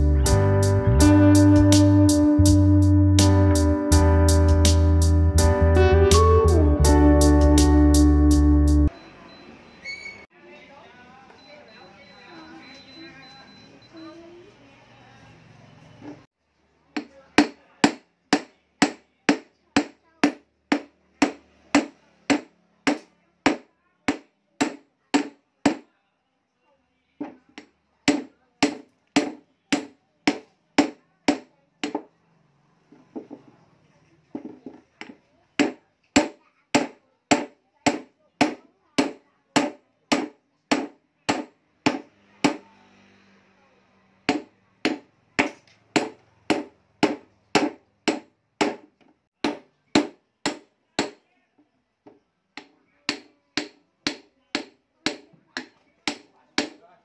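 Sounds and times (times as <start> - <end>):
hammer striking rock: 35.0 - 42.6, 44.3 - 51.2.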